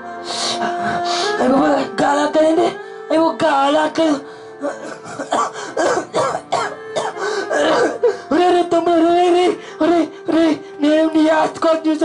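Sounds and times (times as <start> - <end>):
background music with held notes: 0.0 - 12.0
man sobbing into a microphone: 4.0 - 11.6.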